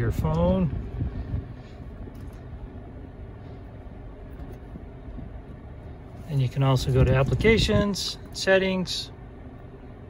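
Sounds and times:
car engine idling: 0:00.0 - 0:10.0
ventilation fan blowing: 0:00.0 - 0:10.0.

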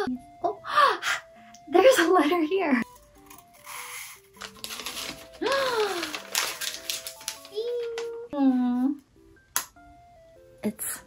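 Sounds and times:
light background music: 0:00.0 - 0:11.0
paper rustling and crackling: 0:04.3 - 0:08.2.

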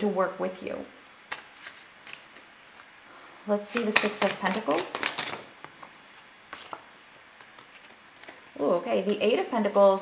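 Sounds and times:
cards being shuffled: 0:01.3 - 0:02.9, 0:03.6 - 0:09.2
cards tapping: 0:03.7 - 0:05.9.

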